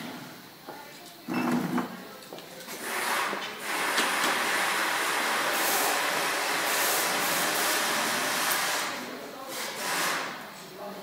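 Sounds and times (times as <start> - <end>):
loud steady hissing: 0.0 - 11.0.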